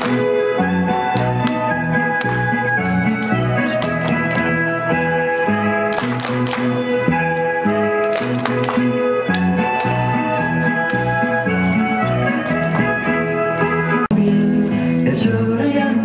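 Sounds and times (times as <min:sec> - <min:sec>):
hand claps: 0:00.0 - 0:00.4, 0:01.0 - 0:04.6, 0:05.8 - 0:12.9
folk dance tune: 0:00.0 - 0:15.2.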